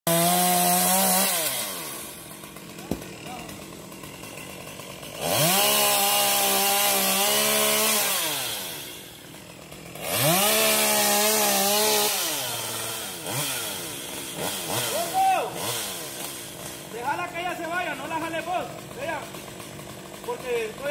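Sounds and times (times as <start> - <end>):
chainsaw cutting wood: 0.1 - 20.9.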